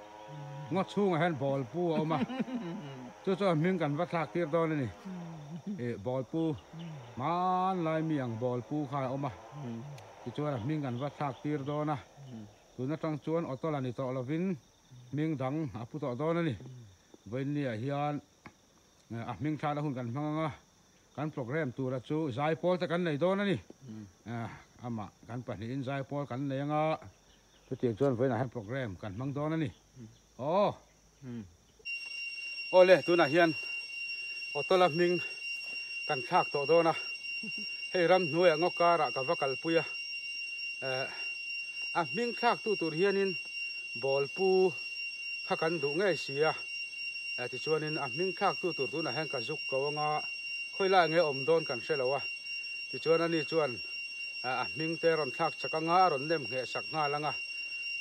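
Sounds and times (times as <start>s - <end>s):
insects droning: 0.0s - 58.0s
man speaking: 0.6s - 2.3s, 5.7s - 18.2s, 34.6s - 35.3s, 38.0s - 39.9s, 40.8s - 41.2s, 45.5s - 46.6s, 47.4s - 50.2s
man talking: 0.6s - 2.3s, 3.2s - 5.0s, 5.8s - 18.2s, 36.1s - 37.0s, 38.0s - 39.9s, 45.5s - 46.6s, 47.4s - 50.2s.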